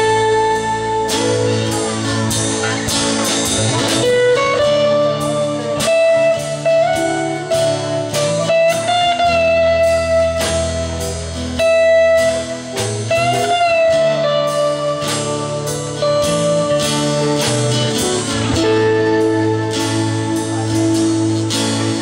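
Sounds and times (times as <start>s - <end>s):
bass guitar: 0.0s - 22.0s
drums: 0.0s - 22.0s
electric guitar lead: 0.0s - 22.0s.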